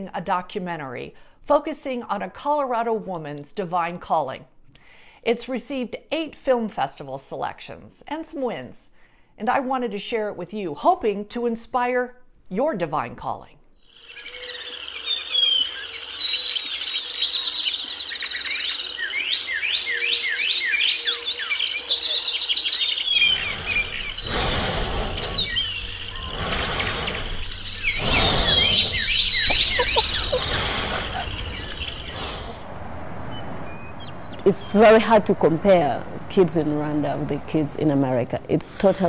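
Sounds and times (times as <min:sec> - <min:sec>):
birds chirping and singing: 0:14.0 - 0:39.0
low rumble: 0:23.1 - 0:39.0.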